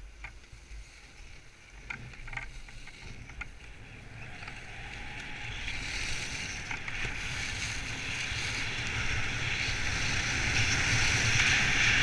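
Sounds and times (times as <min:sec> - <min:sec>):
skis scraping over snow: 0:00.0 - 0:12.0
wind rumbling on microphone: 0:00.0 - 0:12.0.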